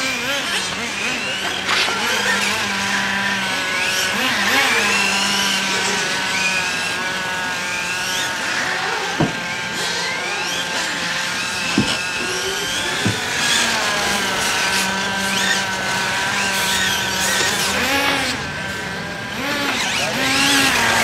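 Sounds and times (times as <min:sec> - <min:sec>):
rc car motor whining: 0:00.0 - 0:21.0.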